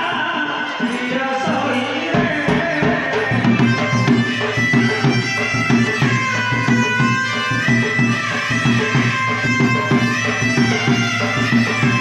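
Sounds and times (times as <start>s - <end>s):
reed wind instrument melody: 0.0s - 12.0s.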